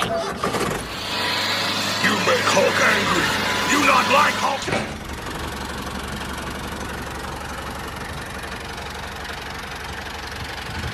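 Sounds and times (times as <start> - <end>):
engine humming: 0.3 - 10.9.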